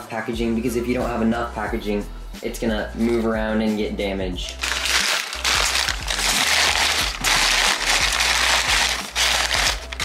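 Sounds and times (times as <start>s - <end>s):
packing paper crinkling: 4.5s - 10.0s.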